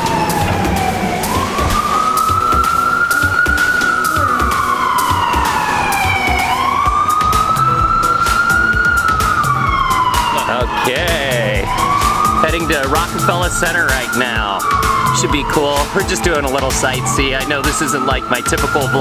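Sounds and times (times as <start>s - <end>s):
emergency siren wailing: 0.0s - 19.0s
music: 0.0s - 19.0s.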